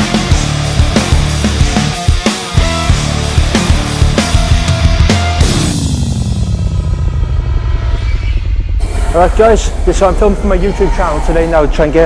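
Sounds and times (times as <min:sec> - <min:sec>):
deep pulsing bass music: 0:00.0 - 0:12.0.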